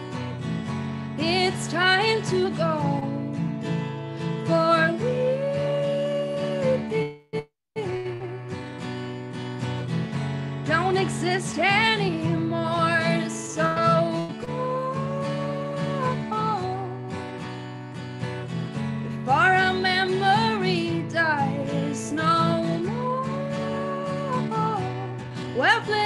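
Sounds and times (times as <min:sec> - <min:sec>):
strummed acoustic guitar: 0:00.0 - 0:26.0
woman singing: 0:01.2 - 0:08.9, 0:10.6 - 0:17.9, 0:19.1 - 0:26.0.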